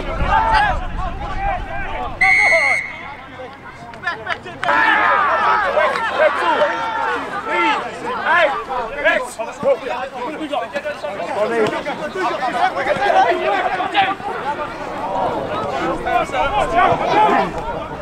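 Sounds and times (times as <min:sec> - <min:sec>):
voices calling and shouting: 0:00.0 - 0:18.0
referee's whistle blast: 0:02.2 - 0:03.2.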